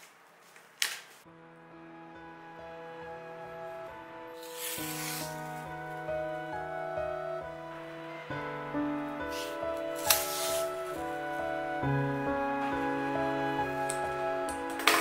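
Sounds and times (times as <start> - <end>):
soft instrumental music: 1.3 - 15.0
adhesive tape pulled off roll: 4.4 - 5.6, 9.4 - 11.0.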